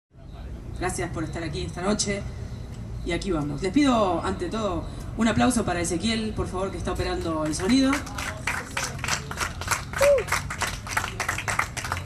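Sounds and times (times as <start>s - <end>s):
audience applauding: 7.5s - 12.0s.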